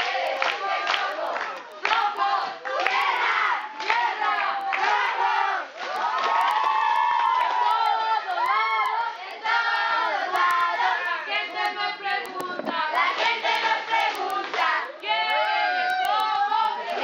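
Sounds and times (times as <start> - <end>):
crowd shouting and cheering: 0.0 - 17.0.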